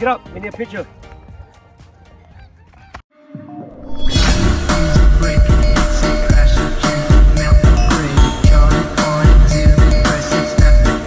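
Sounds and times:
transition sound effect: 3.8 - 9.0
loud music: 3.8 - 11.0.

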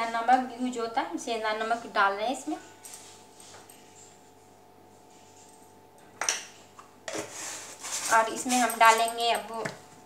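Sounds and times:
plastic lid rubbing and scraping: 7.1 - 8.5.

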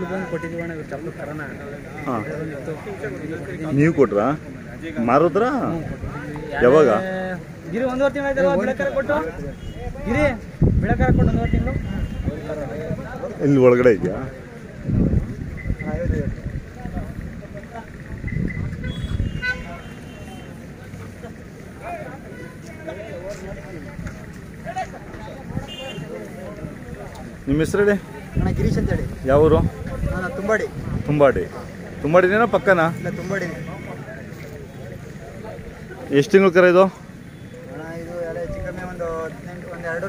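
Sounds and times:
high horn toot: 11.3 - 12.6, 18.7 - 20.6, 25.6 - 26.2.

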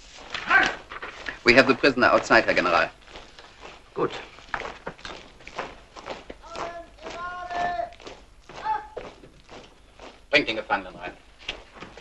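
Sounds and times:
footsteps on hard floor: 0.0 - 12.0.

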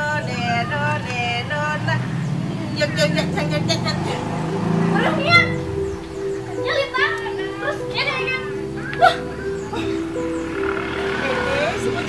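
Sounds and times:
background music with held tones: 0.0 - 12.0
voices speaking: 0.0 - 12.0.

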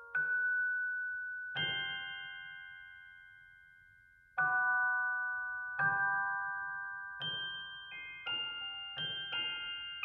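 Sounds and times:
bell-like chimed chords: 0.0 - 10.0.

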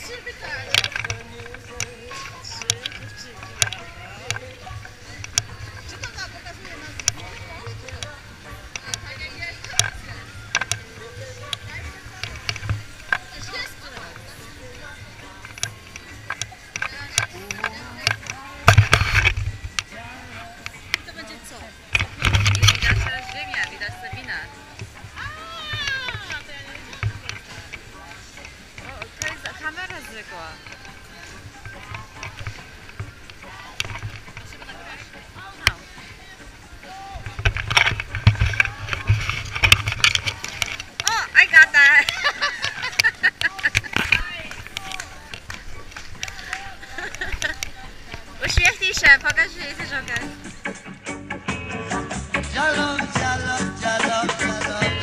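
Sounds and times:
voices: 0.0 - 51.1
background music: 0.0 - 55.0.

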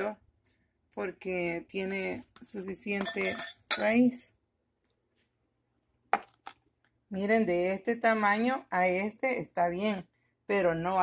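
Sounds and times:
ceramic plant pots clinking: 2.9 - 4.1.

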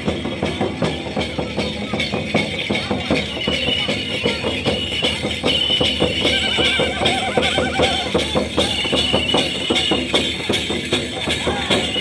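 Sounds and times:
drums beating fast rhythm: 0.0 - 12.0.

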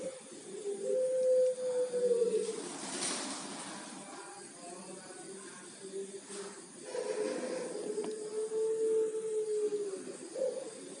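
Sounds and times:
dove cooing: 0.0 - 4.0, 5.2 - 11.0.

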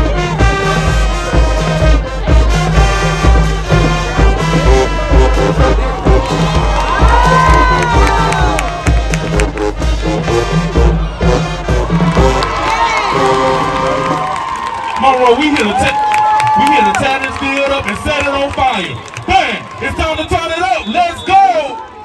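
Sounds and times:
bass drum beat: 0.0 - 14.3
marching band playing: 0.0 - 21.5
crowd cheering and shouting: 0.0 - 22.0.

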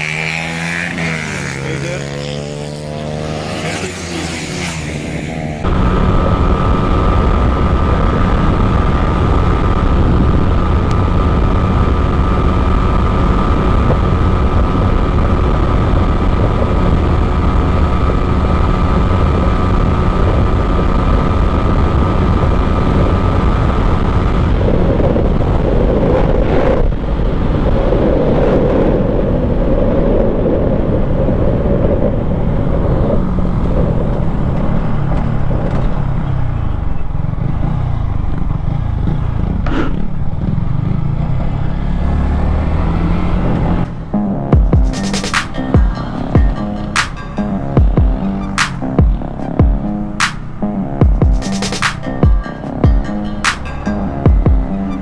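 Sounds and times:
motorcycle engine revving high: 0.0 - 55.0
wind noise on microphone: 4.7 - 55.0.

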